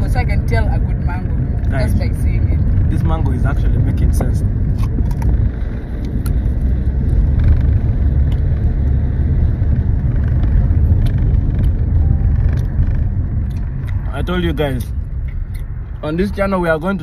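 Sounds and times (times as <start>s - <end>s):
car rumble from inside cabin: 0.0s - 17.0s.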